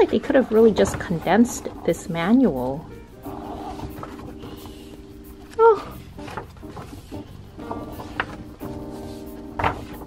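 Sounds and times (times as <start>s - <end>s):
background music: 0.0s - 10.0s
paper pages rustling: 3.6s - 10.0s.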